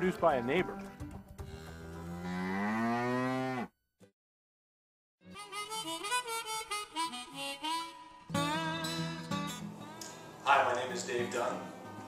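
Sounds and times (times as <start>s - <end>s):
cow mooing: 1.4s - 3.7s.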